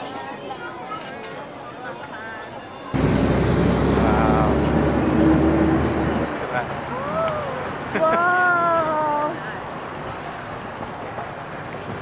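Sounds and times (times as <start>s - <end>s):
people's voices: 0.0s - 12.0s
road traffic rumble: 3.0s - 12.0s.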